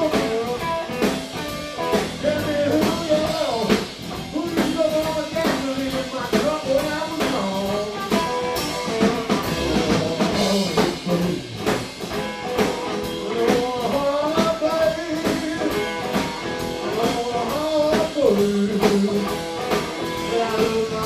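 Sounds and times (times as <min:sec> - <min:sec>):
lead guitar with bent notes: 0:00.0 - 0:05.4, 0:06.7 - 0:14.1, 0:14.7 - 0:21.0
drum kit beat: 0:00.0 - 0:21.0.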